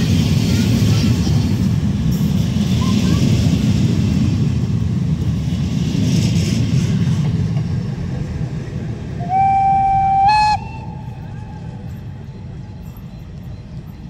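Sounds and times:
train wheels rumbling on track: 0.0 - 14.0
locomotive horn: 9.2 - 11.4.

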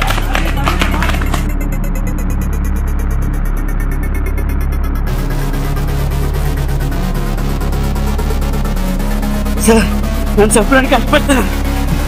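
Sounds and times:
deep bass drone: 0.0 - 12.0.

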